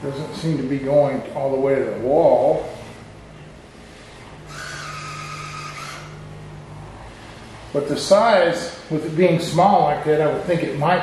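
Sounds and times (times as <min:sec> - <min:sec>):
mopping robot humming: 0:01.9 - 0:11.0
hissing buzz: 0:02.4 - 0:09.2.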